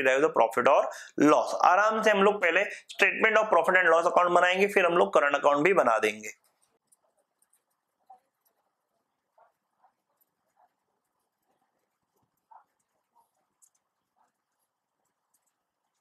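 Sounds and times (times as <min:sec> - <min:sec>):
pen writing on paper: 0:06.4 - 0:16.0.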